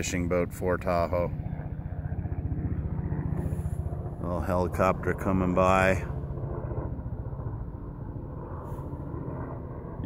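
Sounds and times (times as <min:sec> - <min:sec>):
helicopter flying past: 0:00.0 - 0:10.0.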